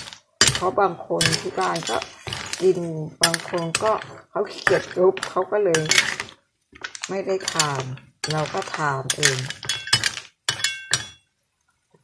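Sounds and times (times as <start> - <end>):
snail shells clinking in a pan: 0.0 - 11.3.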